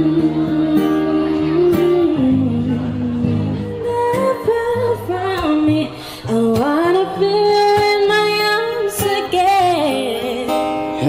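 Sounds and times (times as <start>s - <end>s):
acoustic guitar: 0.0s - 11.0s
woman singing into a microphone: 0.0s - 11.0s.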